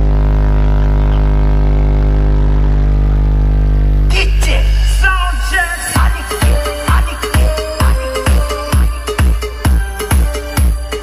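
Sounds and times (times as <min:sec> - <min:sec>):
loud deep bass tone: 0:00.0 - 0:11.0.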